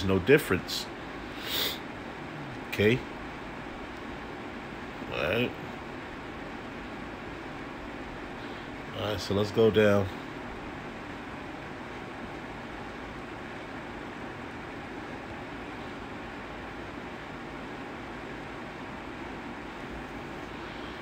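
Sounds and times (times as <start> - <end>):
low hum: 0.0 - 21.0
room noise hiss: 0.0 - 21.0.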